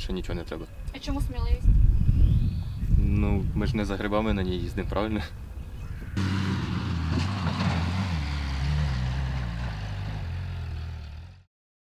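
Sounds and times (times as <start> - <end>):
buggy engine running: 6.2 - 11.5.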